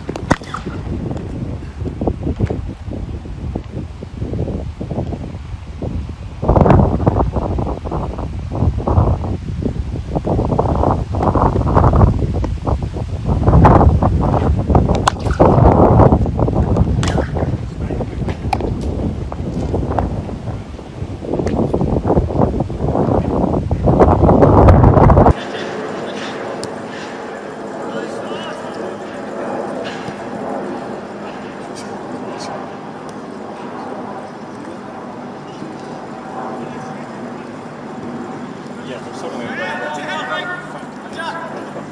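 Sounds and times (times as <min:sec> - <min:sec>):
wind buffeting microphone: 0:00.0 - 0:41.9
faint voices: 0:25.3 - 0:41.9.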